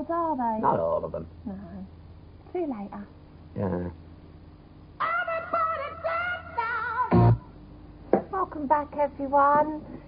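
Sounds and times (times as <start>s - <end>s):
person singing with vibrato: 5.0s - 7.5s.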